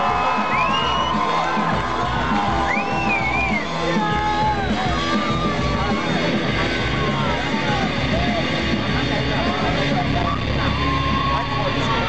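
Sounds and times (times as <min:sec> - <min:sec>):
crowd voices: 0:00.0 - 0:12.0
live rock band: 0:00.0 - 0:12.0.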